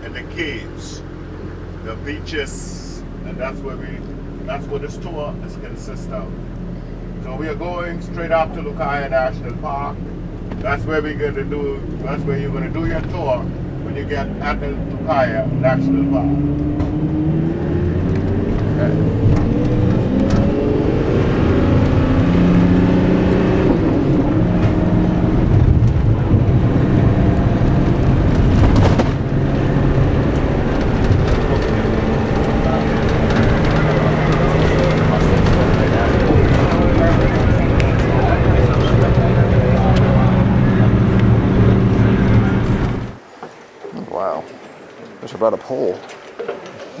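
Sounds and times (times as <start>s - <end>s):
bus engine and road noise: 0.0s - 47.0s
indistinct voices: 10.6s - 21.4s, 30.8s - 43.2s.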